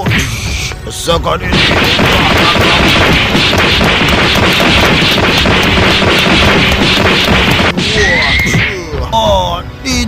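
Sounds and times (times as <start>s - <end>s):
loud steady rushing noise: 1.5s - 8.2s.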